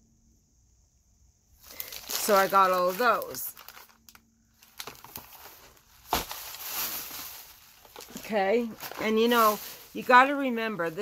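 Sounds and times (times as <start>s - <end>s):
cardboard box handling: 4.7s - 9.8s.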